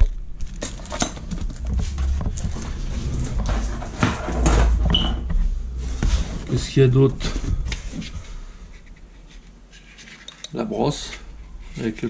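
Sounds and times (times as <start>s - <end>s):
plastic and cardboard rustling: 0.0s - 10.3s.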